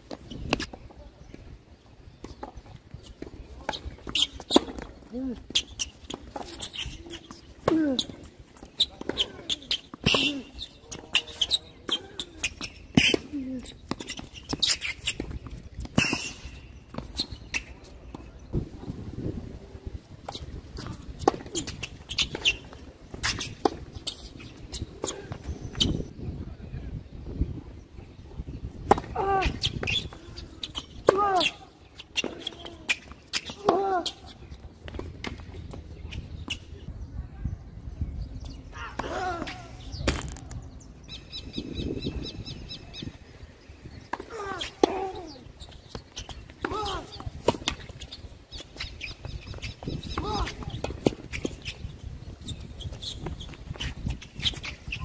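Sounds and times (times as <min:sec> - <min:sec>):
shoe squeaks: 0:03.0 - 0:15.4, 0:16.0 - 0:17.9, 0:20.3 - 0:26.1, 0:29.5 - 0:34.6, 0:44.2 - 0:55.0
racket hitting tennis ball: 0:20.8 - 0:25.4, 0:44.1 - 0:45.4.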